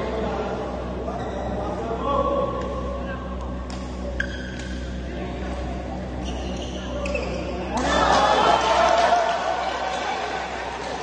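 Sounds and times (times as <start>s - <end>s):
shoes squeaking on court floor: 4.0s - 5.0s, 6.1s - 7.7s
loud voices: 6.0s - 11.0s.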